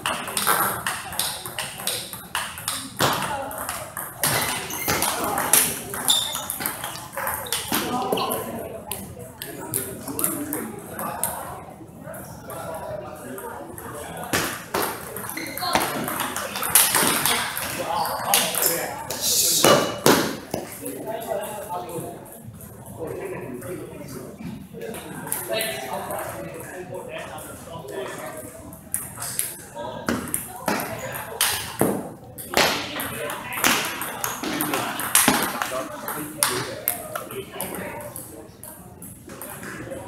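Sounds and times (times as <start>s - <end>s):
table tennis ball pinging: 14.4s - 18.7s.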